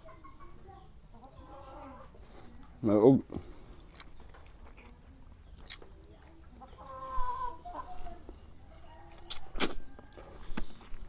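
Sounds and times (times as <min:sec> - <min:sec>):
chicken clucking: 0:00.0 - 0:02.7, 0:03.7 - 0:11.0.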